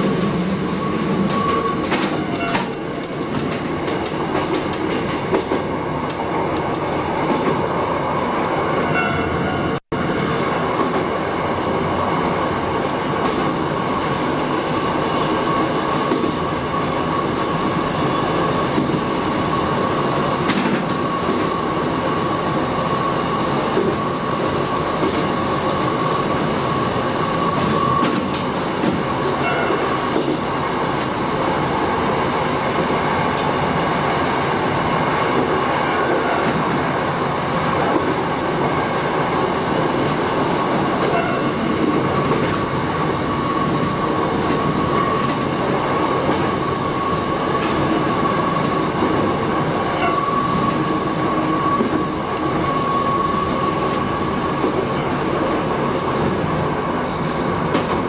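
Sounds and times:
train wheels rolling on rails: 0.0 - 58.0.

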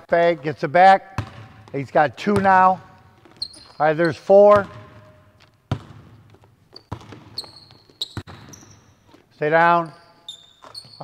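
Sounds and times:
sneakers squeaking on court: 0.1 - 11.0
basketball bouncing on hardwood floor: 1.1 - 3.8, 4.5 - 8.9.

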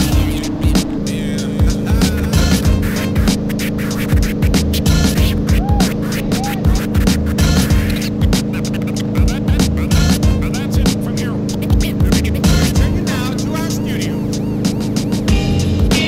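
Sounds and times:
boat engine droning: 0.0 - 16.0.

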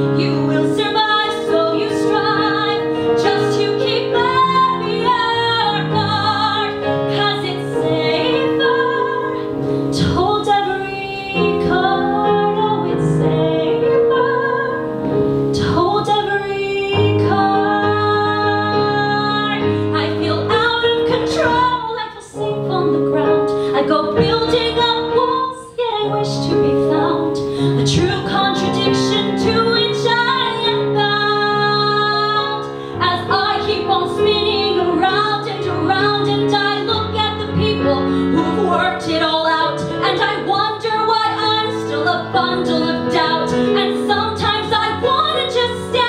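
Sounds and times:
piano accompaniment: 0.0 - 46.0
woman singing: 0.0 - 46.0.

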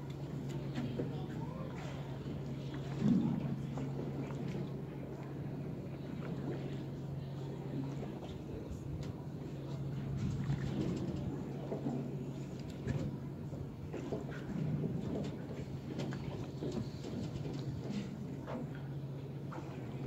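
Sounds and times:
boat engine humming: 0.0 - 20.0
water sloshing and splashing: 0.0 - 20.0.

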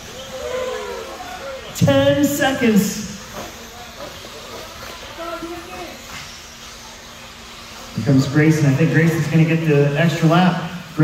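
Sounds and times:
rc cars running: 0.0 - 11.0.

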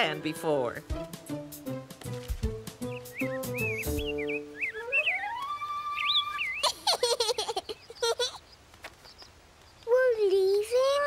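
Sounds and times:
person whistling like birds: 2.9 - 6.7.

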